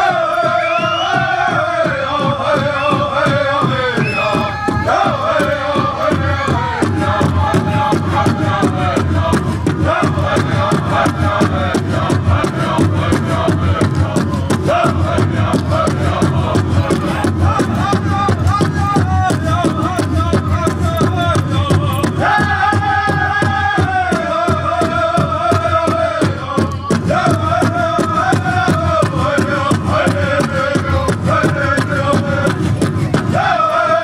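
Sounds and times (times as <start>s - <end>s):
group singing: 0.0s - 34.0s
steady drumbeat: 0.0s - 34.0s.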